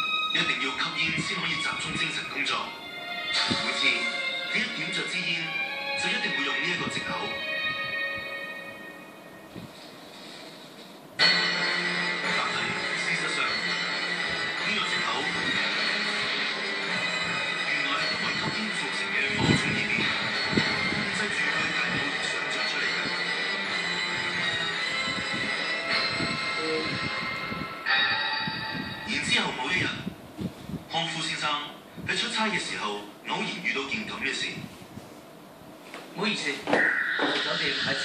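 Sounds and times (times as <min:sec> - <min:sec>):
television background noise: 0:00.0 - 0:38.0.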